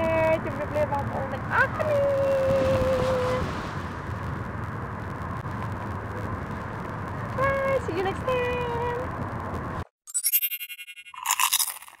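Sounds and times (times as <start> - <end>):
glitchy buzzing electronic tones: 10.1 - 11.2
crisp crunching burst: 11.2 - 12.0.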